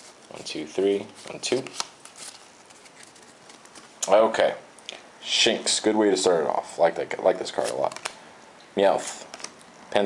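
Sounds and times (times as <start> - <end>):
trading cards rustling: 0.0 - 4.0, 7.6 - 8.2.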